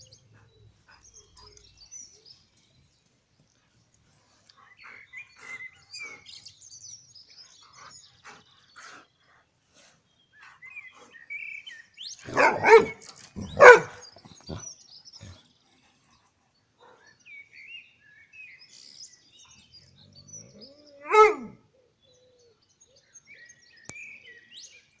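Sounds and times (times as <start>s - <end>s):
small birds chirping: 0.0s - 25.0s
dog barking: 12.3s - 14.0s, 21.1s - 21.6s.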